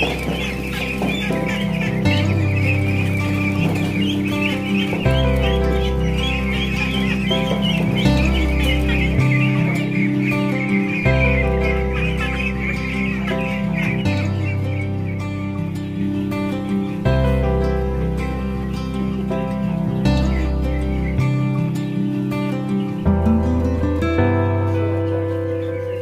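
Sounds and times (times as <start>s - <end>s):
background music: 0.0s - 26.0s
ducklings peeping: 0.0s - 26.0s.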